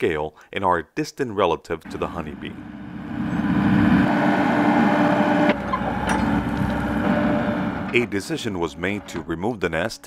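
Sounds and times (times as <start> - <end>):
excavator engine running: 1.8 - 9.9.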